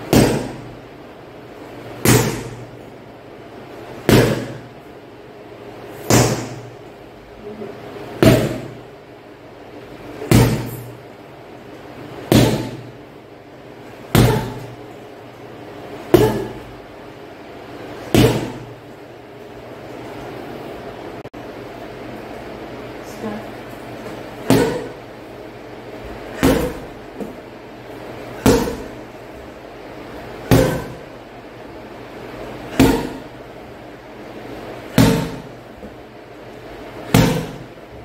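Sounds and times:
kicks thudding on punching bag: 0.1s - 0.7s, 2.0s - 2.8s, 4.0s - 4.7s, 6.0s - 6.8s, 8.2s - 8.8s, 10.3s - 11.0s, 12.3s - 12.9s, 14.1s - 14.8s, 16.1s - 16.7s, 18.1s - 18.7s, 24.4s - 25.0s, 26.3s - 27.4s, 28.4s - 29.0s, 30.4s - 31.1s, 32.7s - 33.3s, 34.9s - 35.6s, 37.1s - 37.8s.

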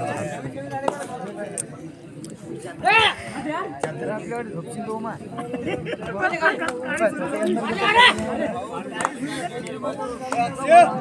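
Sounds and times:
crowd talking and calling out: 0.0s - 11.0s
loud shout: 7.6s - 8.3s.

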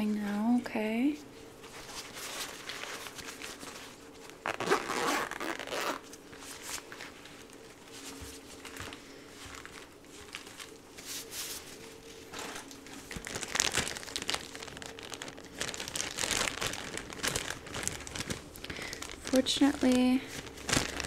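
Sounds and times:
rubber gloves crinkling: 1.0s - 21.0s.

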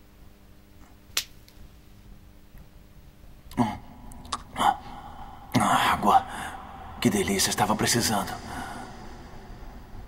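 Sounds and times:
ragged breathing: 8.3s - 10.0s.

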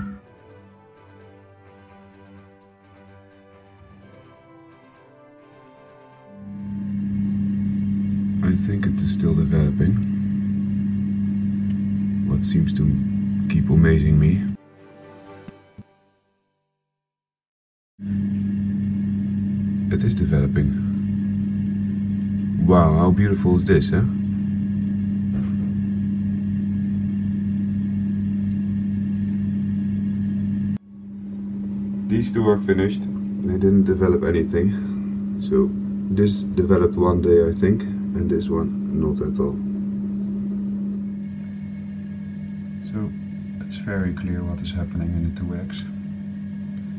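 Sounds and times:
high whine: 0.0s - 14.6s, 18.1s - 46.9s
incubator fan humming: 0.0s - 14.6s, 18.0s - 46.9s.

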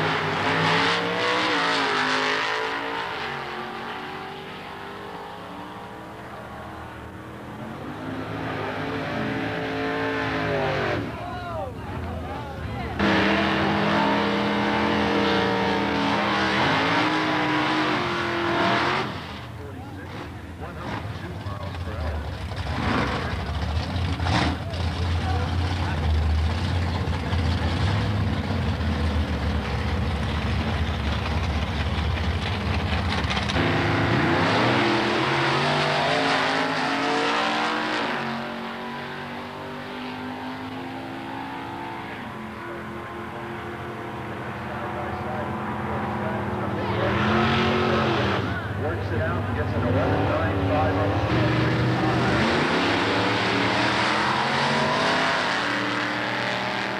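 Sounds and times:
cars accelerating away: 0.0s - 11.3s, 12.0s - 56.9s
race car engines revving: 0.0s - 56.9s.

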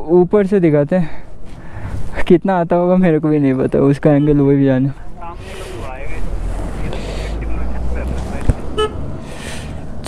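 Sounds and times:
short vehicle horn beep: 8.8s - 9.0s.

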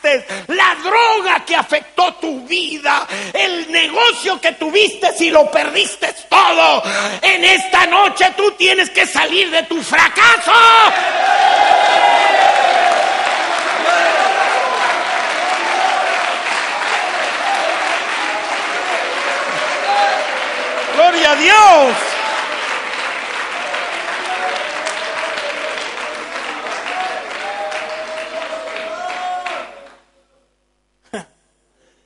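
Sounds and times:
loud shout: 10.0s - 22.6s, 23.6s - 30.0s
congregation applauding: 10.8s - 30.1s.

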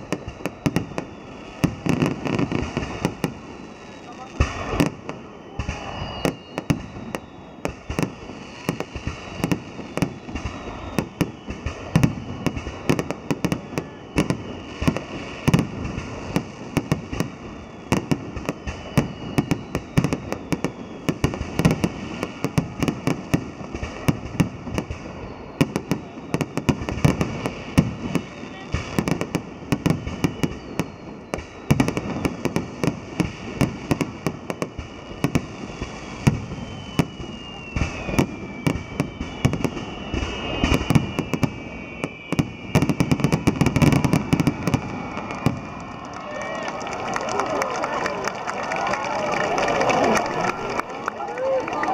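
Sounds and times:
firework bangs and crackling: 0.0s - 51.9s
high falling firework whistles: 0.0s - 51.9s.

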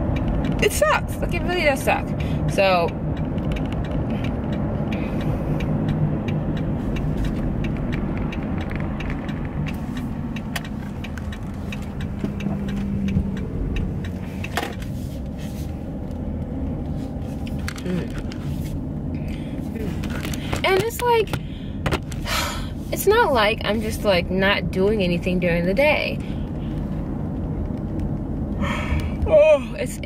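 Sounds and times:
car engine hum: 0.0s - 30.0s
road rumble: 0.0s - 30.0s.

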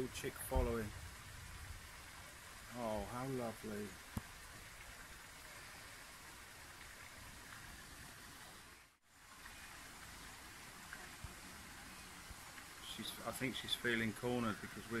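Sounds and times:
light rain on wet path: 0.0s - 15.0s.

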